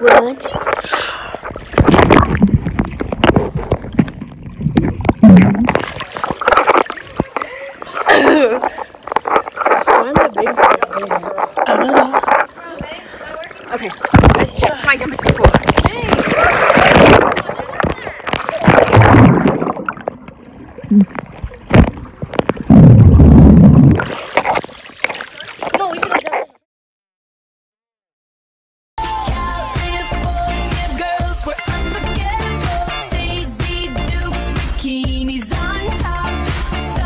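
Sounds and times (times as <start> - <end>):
girls' voices: 0.0 - 0.9, 11.6 - 16.7
water splashing and gurgling: 0.0 - 26.6
loud watery rush: 5.4 - 26.2.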